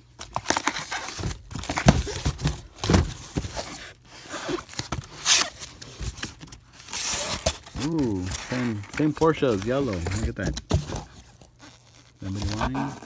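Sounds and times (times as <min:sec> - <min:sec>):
cardboard packaging rustling: 0:00.0 - 0:13.0.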